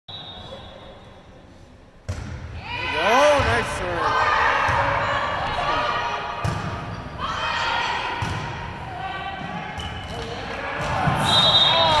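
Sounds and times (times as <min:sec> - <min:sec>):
high steady whistle: 0:00.1 - 0:01.3, 0:11.2 - 0:12.0
volleyball hits: 0:02.0 - 0:03.8, 0:06.4 - 0:07.0, 0:08.0 - 0:08.8, 0:09.4 - 0:12.0
players and spectators shouting: 0:02.6 - 0:06.2.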